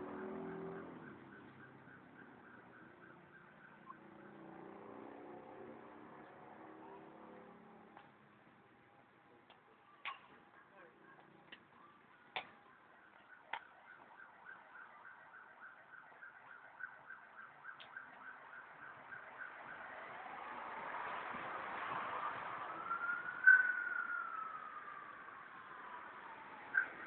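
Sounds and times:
faint street ambience: 0:00.0 - 0:27.0
vehicle: 0:00.0 - 0:27.0.

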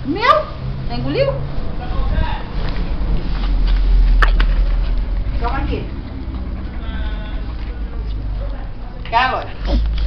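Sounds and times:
puppy whining: 0:05.2 - 0:08.2.

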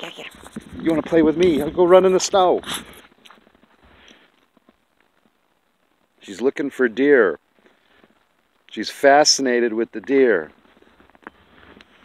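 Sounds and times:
footsteps in deep snow: 0:00.2 - 0:06.3, 0:07.5 - 0:12.0.

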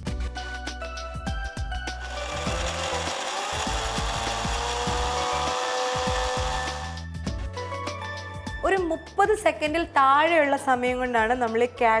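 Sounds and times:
background music: 0:00.0 - 0:12.0
mixer grinder motor whine: 0:02.0 - 0:07.0.

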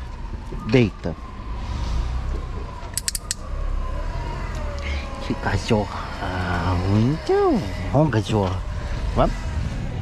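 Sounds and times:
low traffic rumble: 0:00.0 - 0:10.0
sharp clicks: 0:02.9 - 0:03.4.

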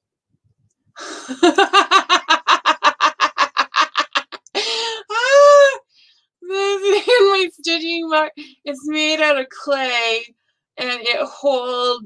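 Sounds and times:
woman laughing hard: 0:01.0 - 0:05.4.

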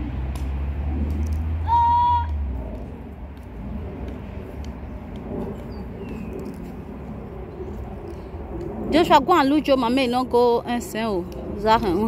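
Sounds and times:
steady low rumble: 0:00.0 - 0:12.0
child's high-pitched call: 0:01.6 - 0:02.4.

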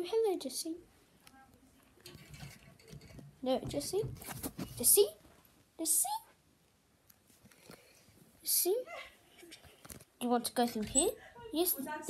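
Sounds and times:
faint rustling: 0:00.9 - 0:05.7.

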